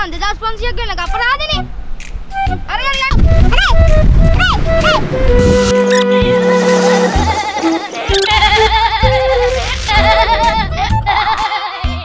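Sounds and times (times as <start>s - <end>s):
melody with heavy vibrato: 3.3s - 8.7s.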